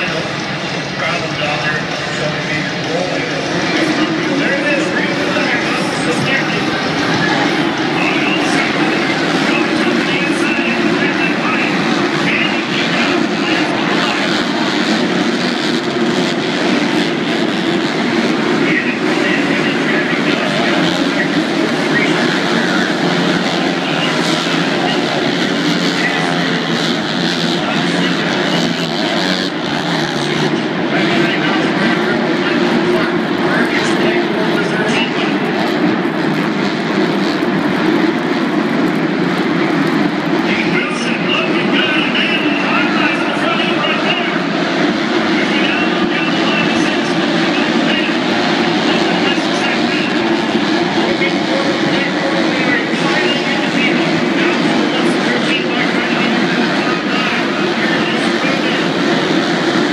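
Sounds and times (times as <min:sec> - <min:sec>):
motorbikes racing: 0:00.0 - 0:59.9
voices: 0:00.0 - 0:59.9.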